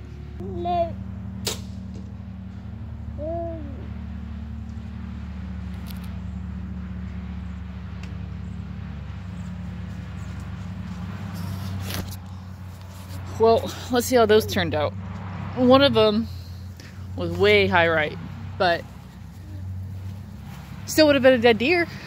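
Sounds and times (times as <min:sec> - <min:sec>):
steady low hum: 0:00.0 - 0:22.0.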